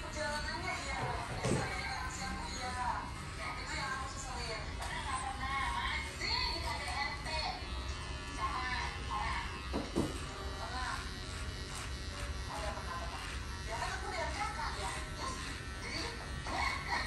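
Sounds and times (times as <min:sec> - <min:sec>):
electric hair clipper buzzing: 0:00.0 - 0:17.0.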